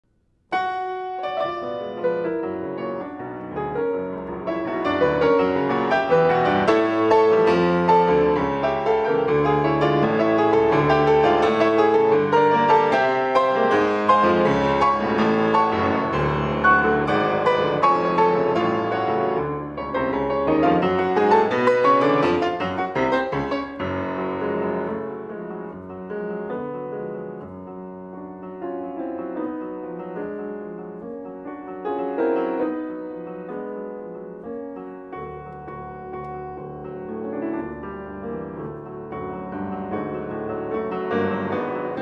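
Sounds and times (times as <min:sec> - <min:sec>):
grand piano playing: 0:00.5 - 0:42.0.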